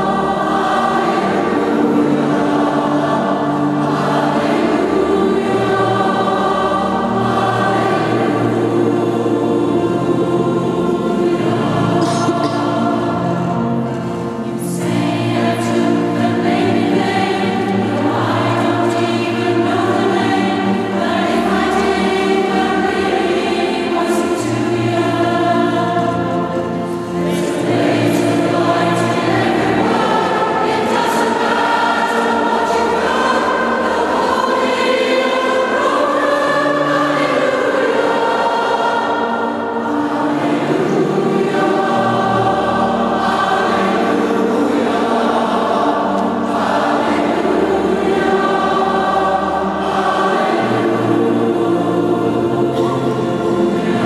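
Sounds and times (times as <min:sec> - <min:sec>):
mixed choir singing: 0:00.0 - 0:54.0
piano accompaniment: 0:00.0 - 0:54.0.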